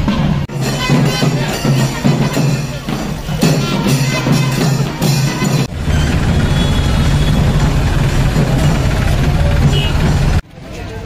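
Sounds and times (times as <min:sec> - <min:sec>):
music: 0:00.0 - 0:06.2.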